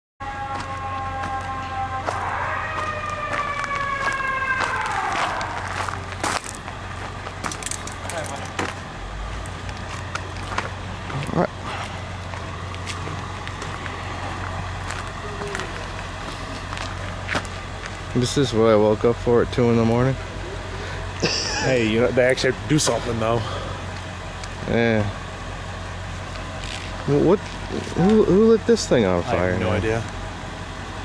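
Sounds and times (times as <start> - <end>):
fire truck siren: 0.2 - 31.0
steady low hum: 0.2 - 31.0.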